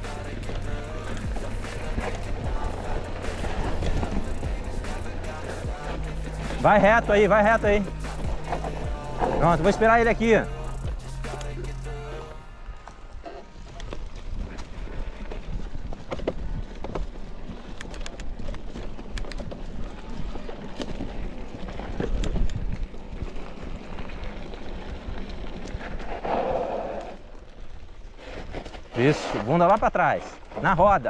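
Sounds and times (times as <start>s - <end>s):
bike frame and chain rattling: 0.0s - 11.8s, 13.2s - 26.6s
rolling rumble: 0.0s - 31.0s
tyres crunching over leaves: 0.0s - 31.0s.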